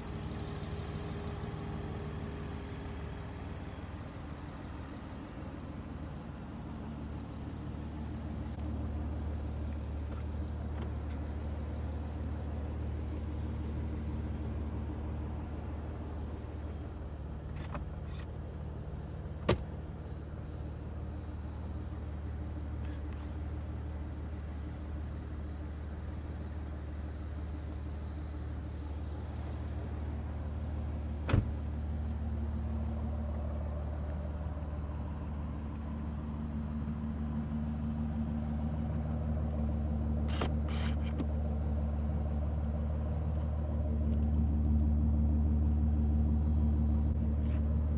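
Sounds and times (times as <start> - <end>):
car engine idling: 0.0 - 47.9.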